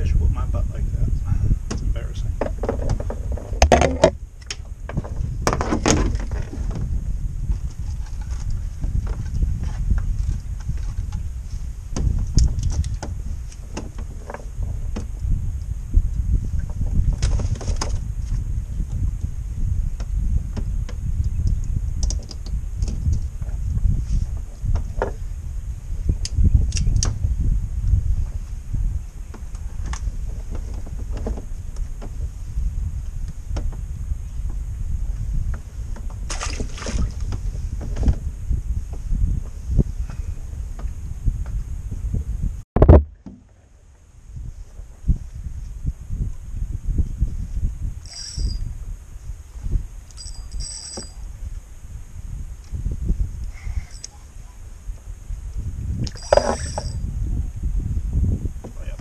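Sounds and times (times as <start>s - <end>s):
steady low rumble: 0.0s - 59.0s
fishing gear clicking and rattling: 48.1s - 48.6s, 56.0s - 57.0s.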